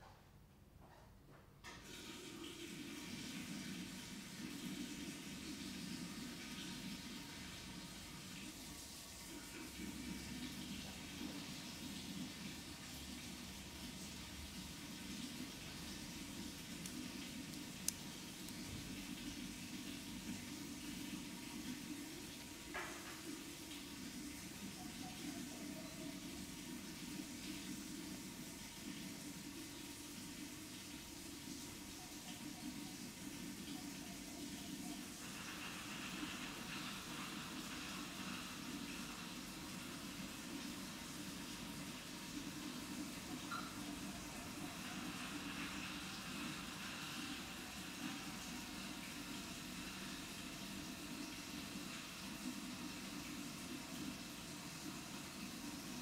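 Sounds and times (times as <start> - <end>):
tap water rushing through pump: 1.6 - 56.0
tap water running into sink: 1.7 - 24.8.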